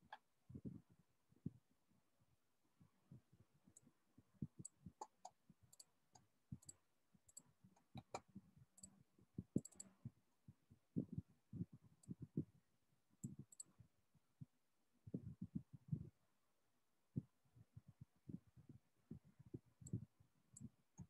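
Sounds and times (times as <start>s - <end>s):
mouse clicks: 9.6s - 9.9s.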